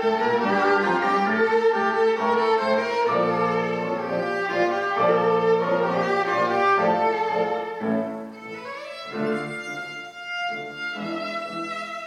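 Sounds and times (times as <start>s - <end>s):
piano accompaniment: 0.0s - 12.0s
violin playing held notes: 0.0s - 12.0s.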